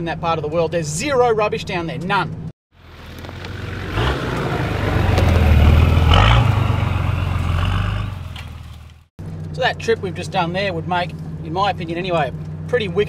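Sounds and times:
off-road vehicle engine: 0.0 - 13.0.

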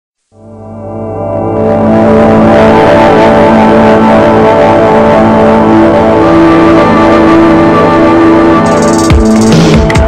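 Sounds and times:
guitars holding chords: 0.5 - 8.8.

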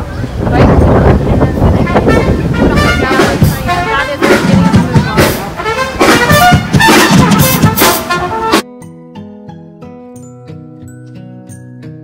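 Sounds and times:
voices: 0.0 - 8.2
street noise: 0.0 - 9.2
street band playing: 0.0 - 12.0
trumpets: 1.8 - 8.7.

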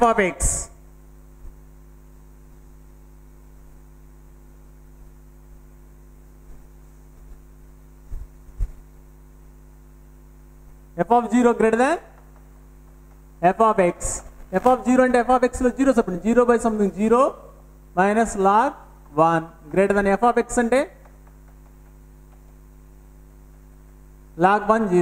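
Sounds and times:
man speaking: 0.0 - 0.8, 11.0 - 12.1, 13.4 - 21.0, 24.4 - 25.0
electrical mains hum: 0.0 - 25.0.

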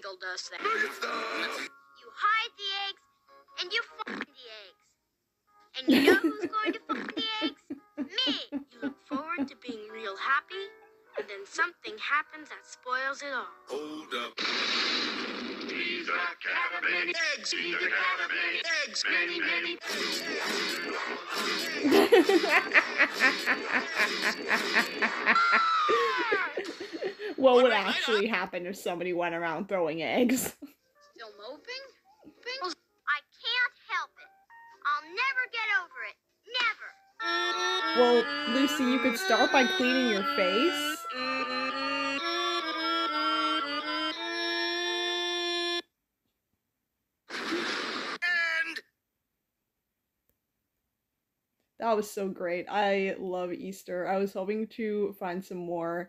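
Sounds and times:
woman laughing: 5.9 - 9.8, 21.7 - 28.3, 38.0 - 40.8
rushing explosion: 14.4 - 15.8.

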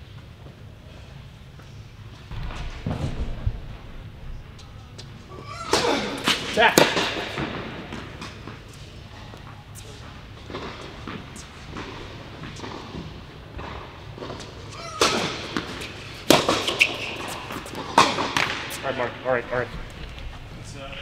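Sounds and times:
tennis ball struck by racket: 15.0 - 18.8.

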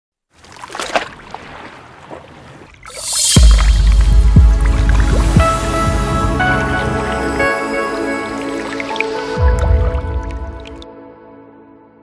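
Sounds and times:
liquid dripping sound effects: 2.7 - 10.9
sustained music: 3.2 - 12.0.

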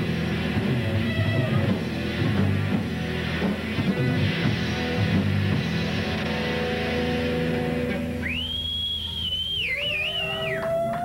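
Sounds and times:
high whistling tone gliding: 8.2 - 10.8.

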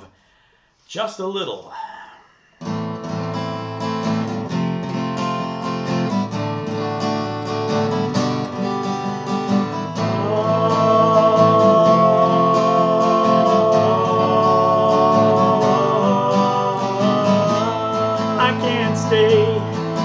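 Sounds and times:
acoustic guitar chords: 2.6 - 20.0
man singing wordless notes: 10.0 - 20.0.

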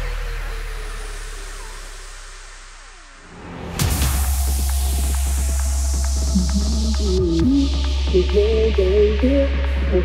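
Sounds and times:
deep bass: 0.0 - 10.0
falling synth tone: 6.2 - 7.7.

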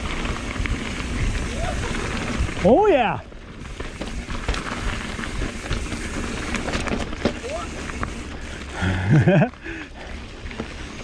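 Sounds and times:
bike rattling clicks: 0.0 - 11.0
tyres rushing on dirt: 0.0 - 11.0
person shouting wordlessly: 1.5 - 1.9.

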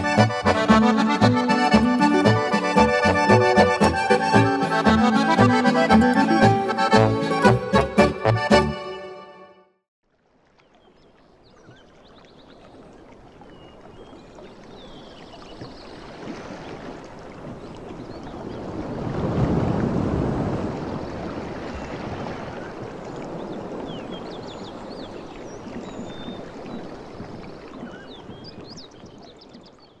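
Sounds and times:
rushing water noise: 0.0 - 8.4, 11.2 - 29.8.

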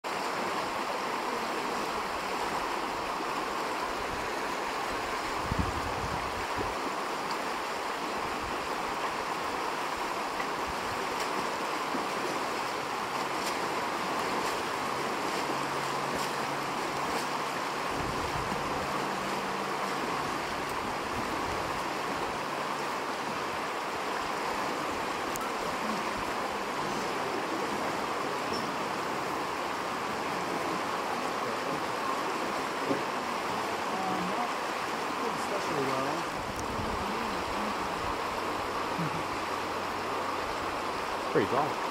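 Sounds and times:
river rushing over rocks: 0.0 - 41.9.

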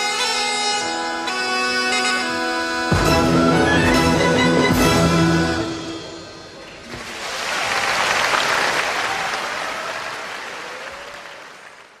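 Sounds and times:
audience applause: 6.9 - 12.0.

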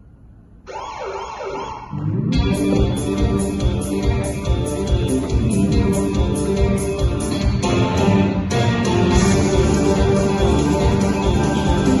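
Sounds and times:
police siren wailing: 0.7 - 2.2.

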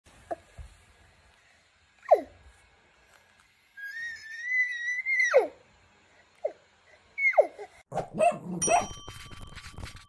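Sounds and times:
toddler squealing: 3.8 - 5.6.

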